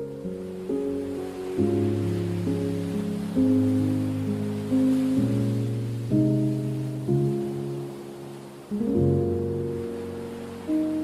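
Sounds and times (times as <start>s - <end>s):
soft piano chords: 0.0s - 11.0s.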